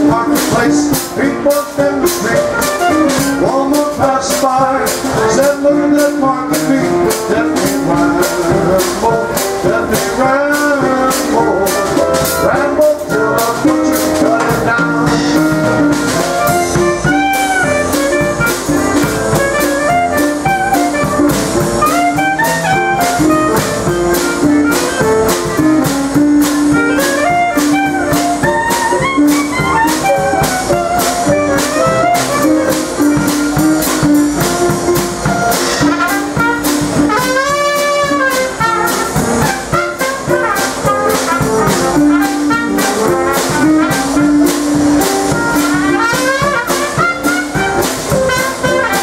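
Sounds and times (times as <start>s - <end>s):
clarinet melody: 0.0s - 49.0s
drum kit beat: 0.0s - 49.0s.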